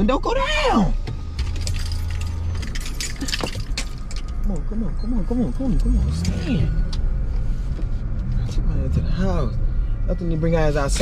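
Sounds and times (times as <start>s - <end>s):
car humming: 0.0s - 11.0s
keys clinking and jangling: 1.4s - 4.5s.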